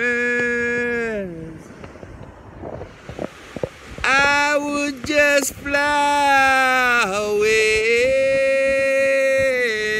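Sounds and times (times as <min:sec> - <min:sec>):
wind on microphone: 0:00.0 - 0:09.9.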